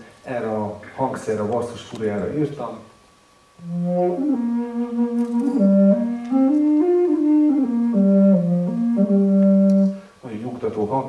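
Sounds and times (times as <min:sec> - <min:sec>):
bass flute slow melody: 0:03.6 - 0:10.0.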